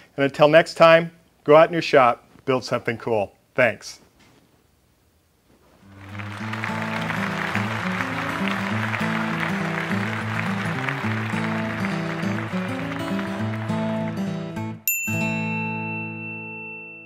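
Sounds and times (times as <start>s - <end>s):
outro music: 5.9s - 14.9s
high ringing tone: 14.8s - 17.0s.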